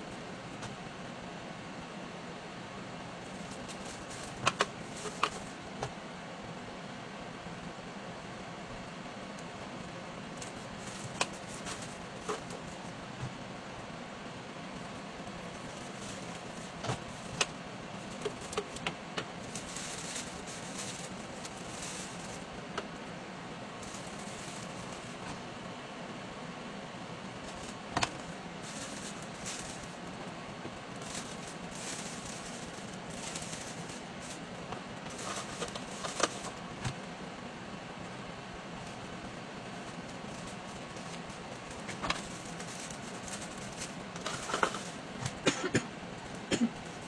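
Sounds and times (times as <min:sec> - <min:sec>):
steady hiss: 0:00.0 - 0:47.0
steady low hum: 0:00.0 - 0:47.0.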